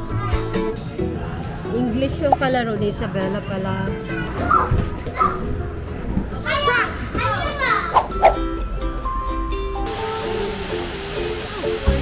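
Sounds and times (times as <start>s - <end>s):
background music: 0.0s - 12.0s
waterfall rushing: 9.9s - 12.0s.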